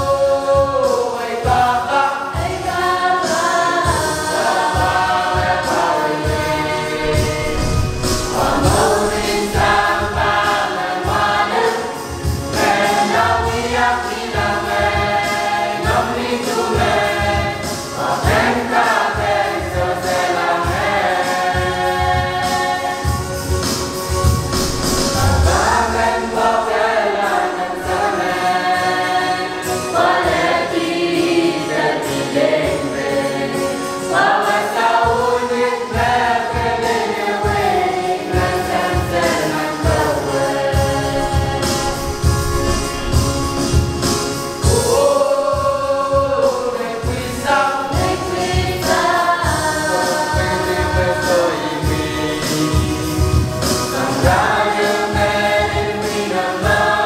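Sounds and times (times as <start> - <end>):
group singing a church song: 0.0 - 57.0
steady low beat: 6.6 - 10.6, 24.3 - 28.2, 40.8 - 44.9.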